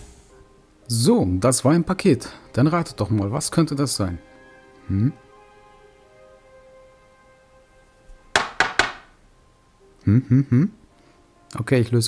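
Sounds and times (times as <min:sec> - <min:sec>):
metal stamp knocking on wood: 0:08.4 - 0:09.1.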